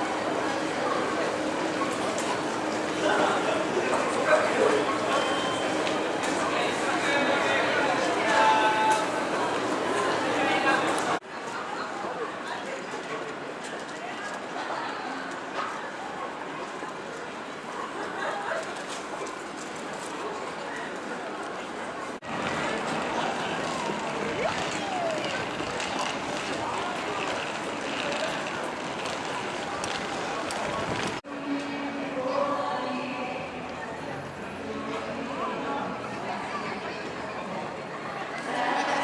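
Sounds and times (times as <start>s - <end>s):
crowd chatting: 0.0s - 39.0s.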